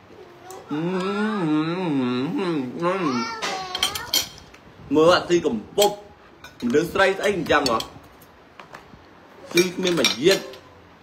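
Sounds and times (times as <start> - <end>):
cutlery clinking on plates: 5.8 - 8.0, 9.4 - 10.7.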